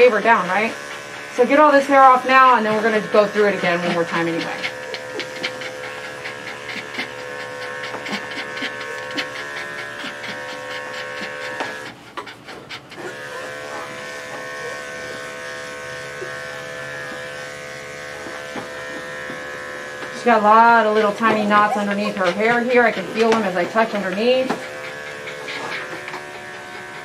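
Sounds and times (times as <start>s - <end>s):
electric clipper running: 0.0s - 12.0s, 12.9s - 27.0s
dog panting: 0.0s - 15.4s, 16.0s - 27.0s.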